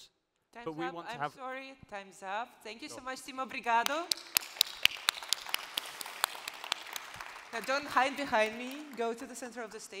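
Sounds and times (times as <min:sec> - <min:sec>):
audience clapping: 0:03.6 - 0:10.0
distinct hand claps: 0:03.7 - 0:10.0.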